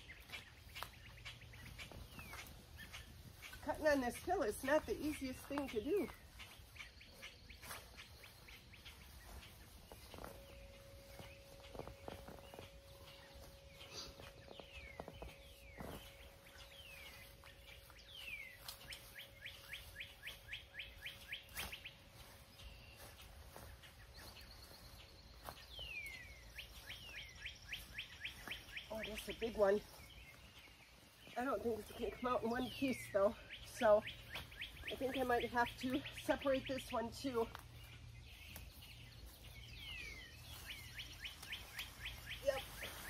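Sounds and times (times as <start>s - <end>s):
small birds chirping: 0.0s - 43.0s.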